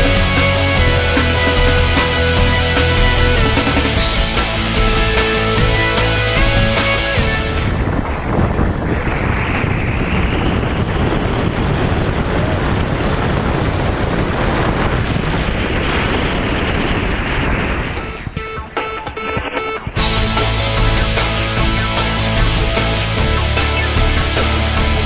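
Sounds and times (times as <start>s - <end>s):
wind rushing over microphone: 0.0s - 25.0s.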